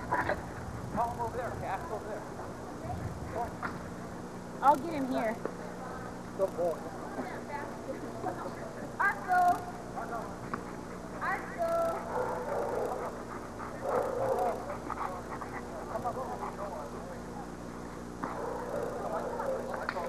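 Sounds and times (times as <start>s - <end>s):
dogs barking: 10.0s - 20.0s.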